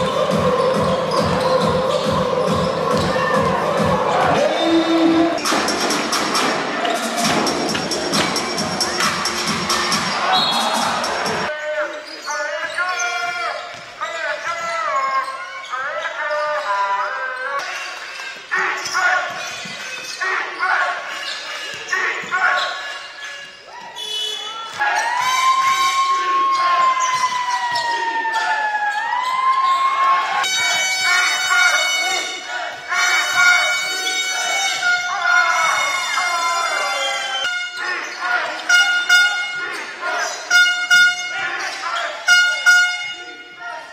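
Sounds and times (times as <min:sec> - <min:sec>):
basketball bouncing on court: 0:00.3 - 0:03.9
voices calling: 0:07.9 - 0:43.9.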